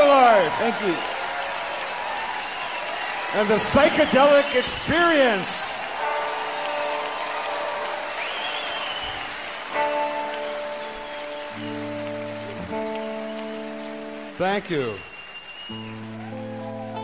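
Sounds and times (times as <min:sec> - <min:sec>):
audience applause: 0:00.0 - 0:17.0
electric guitar chords: 0:05.8 - 0:14.4, 0:15.7 - 0:17.0
whistle: 0:08.2 - 0:09.3, 0:14.8 - 0:16.1.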